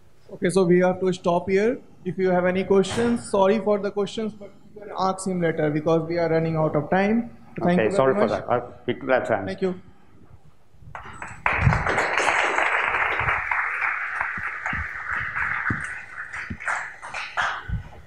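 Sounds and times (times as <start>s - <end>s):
audience applauding: 11.0s - 18.0s
low thumps: 14.4s - 15.9s.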